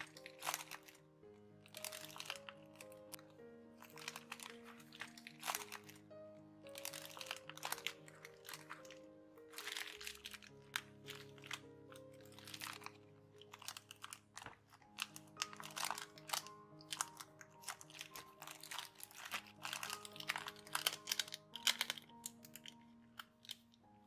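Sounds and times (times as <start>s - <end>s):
paper crinkling and rustling: 0.0s - 24.0s
soft background music: 0.0s - 24.0s.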